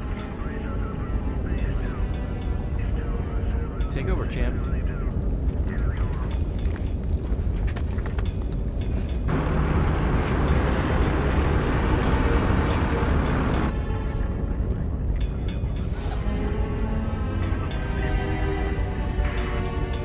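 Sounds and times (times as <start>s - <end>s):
film soundtrack music: 0.0s - 20.0s
turboprop plane engine drone: 8.8s - 20.0s.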